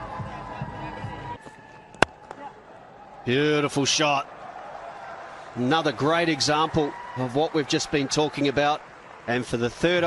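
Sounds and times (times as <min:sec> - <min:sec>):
match broadcast ambience: 0:00.0 - 0:10.0.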